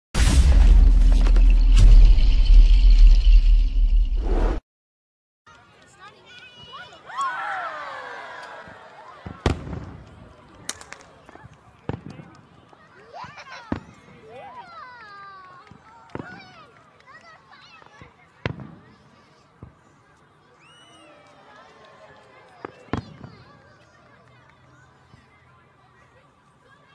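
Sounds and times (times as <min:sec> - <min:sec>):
fireworks bangs: 0:00.2 - 0:03.5, 0:09.2 - 0:10.1
deep bass rumble: 0:00.2 - 0:04.4
crowd voices: 0:05.5 - 0:26.9.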